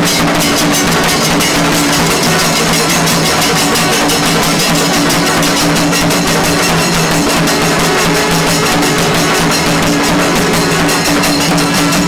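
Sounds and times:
cymbals: 0.0 - 12.0
stick-beaten drums: 0.0 - 12.0
long brass horns droning: 1.5 - 12.0.

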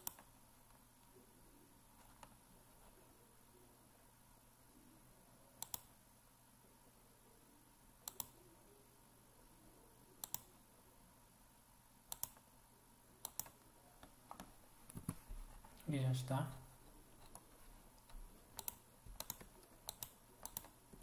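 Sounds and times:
computer mouse button clicking: 5.6 - 5.9, 8.1 - 8.3, 10.2 - 10.5, 12.1 - 12.4, 18.0 - 20.7.

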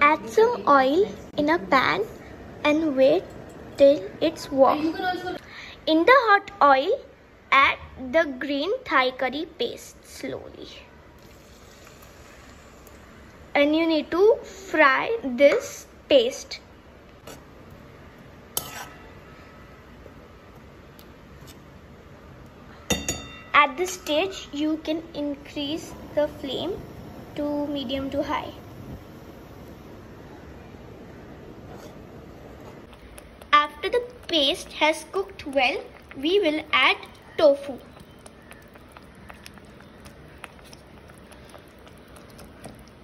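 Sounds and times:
steady hiss: 11.2 - 13.5
spoon stirring paste in a pan: 32.9 - 43.0.

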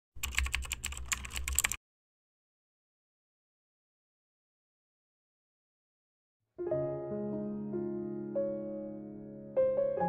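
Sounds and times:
keyboard key clicks: 0.2 - 1.8.

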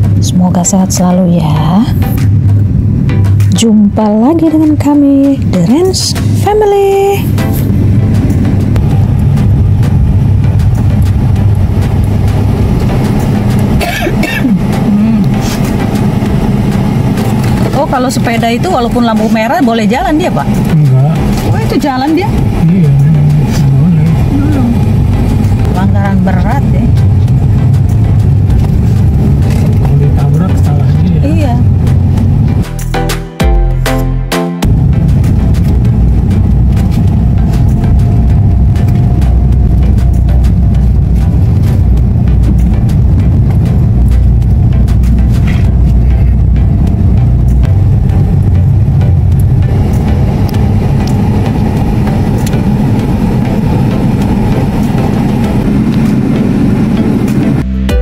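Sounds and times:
tyre road noise: 0.0 - 32.9, 34.6 - 57.8
car engine: 0.0 - 34.0, 34.6 - 57.9.

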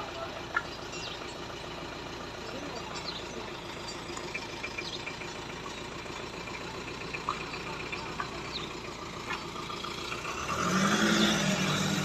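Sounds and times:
engine idling: 0.0 - 10.8.

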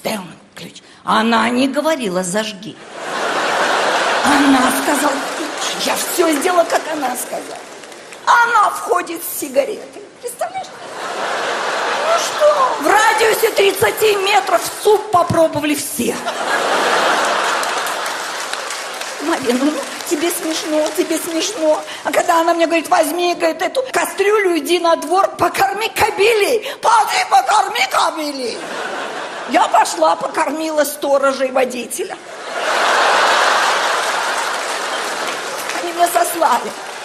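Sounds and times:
audience applause: 3.0 - 8.6, 10.8 - 14.9, 16.3 - 22.6, 32.5 - 37.0.

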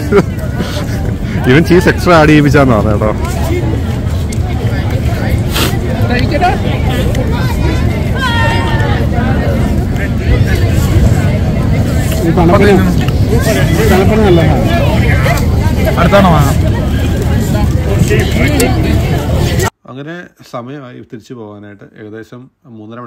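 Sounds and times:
heavy low rumble: 0.0 - 19.7
people talking: 0.0 - 23.0.

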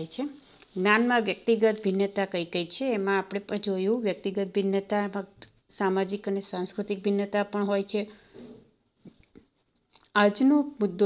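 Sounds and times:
woman's voice: 0.0 - 8.2, 10.2 - 11.0.

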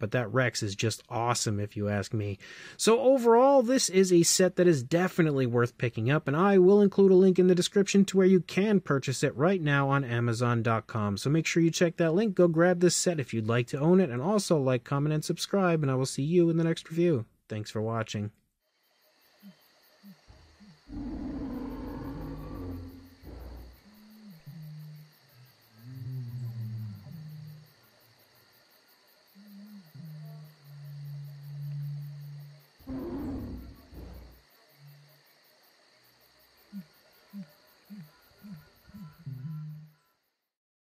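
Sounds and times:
high insect-like drone: 18.7 - 27.8
short animal calls: 19.4 - 27.6, 32.8 - 34.4, 36.6 - 40.2
low animal calls: 19.4 - 27.7, 29.4 - 35.0, 36.6 - 40.1
loud creature roars: 20.9 - 23.8, 32.9 - 34.4.

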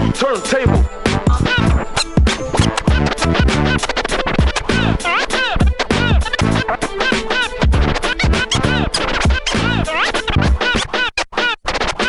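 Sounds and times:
hip hop beat: 0.0 - 12.0
vinyl record scratching: 0.0 - 12.0.

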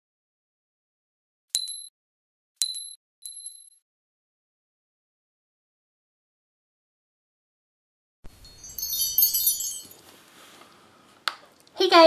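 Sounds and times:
bright glassy dings: 1.6 - 1.9, 2.6 - 3.8, 8.3 - 10.1.

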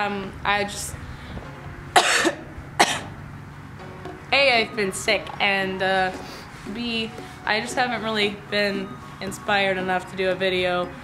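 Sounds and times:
woman coughing: 2.0 - 3.1.

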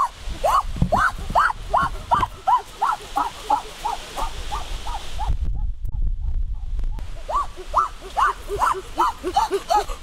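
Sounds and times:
animal yelping: 0.0 - 5.3, 7.2 - 10.0.

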